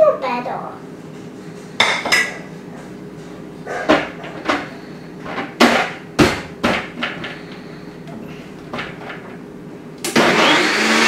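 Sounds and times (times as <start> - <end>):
kitchenware clattering on counter: 1.8 - 2.4.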